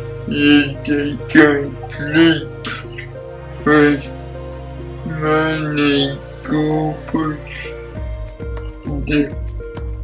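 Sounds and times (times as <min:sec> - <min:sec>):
quiet background music: 0:00.0 - 0:10.0
person speaking slowly: 0:00.3 - 0:04.2, 0:05.0 - 0:07.8.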